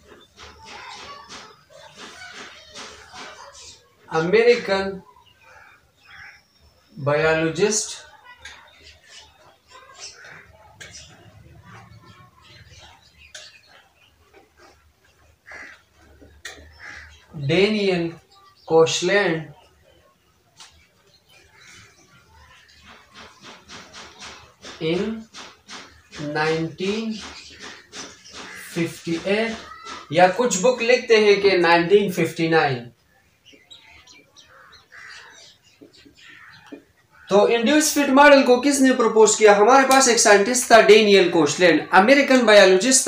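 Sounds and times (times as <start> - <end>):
marker squeaking on a whiteboard: 0.0 - 4.7, 7.6 - 17.4, 20.6 - 31.3.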